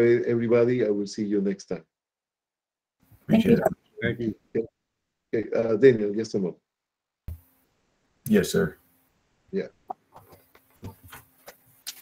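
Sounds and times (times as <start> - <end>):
person speaking over video call: 0.0 - 1.8, 3.3 - 4.7, 5.4 - 6.6, 8.3 - 8.8.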